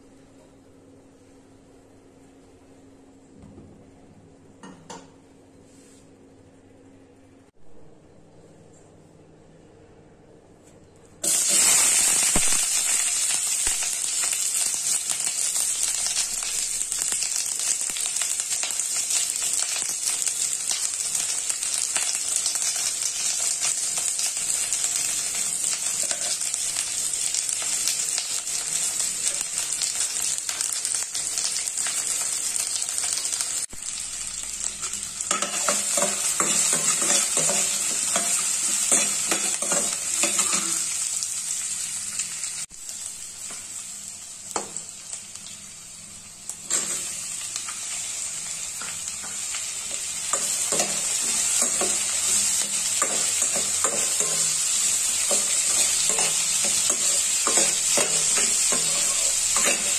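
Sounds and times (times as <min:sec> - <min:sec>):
food sizzling in a pan: 0:11.2 - 0:59.9
steel spoon scraping a pan: 0:34.8 - 0:41.0, 0:55.3 - 0:59.9.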